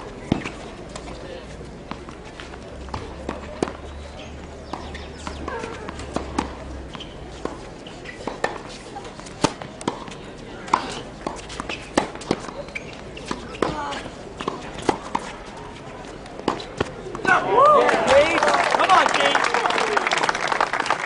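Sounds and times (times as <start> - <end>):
tennis ball bouncing: 0.0 - 17.4
racket hitting tennis ball: 0.2 - 1.2, 1.8 - 17.4.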